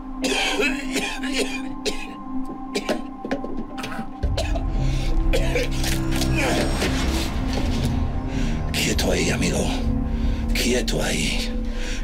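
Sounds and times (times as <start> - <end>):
low music drone: 0.0 - 12.0
man coughing and choking: 0.2 - 3.2, 3.8 - 6.6.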